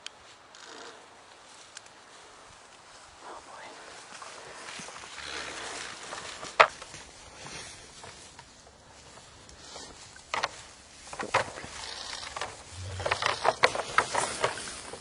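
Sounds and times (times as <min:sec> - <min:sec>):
moose antlers clashing: 0:10.3 - 0:15.0.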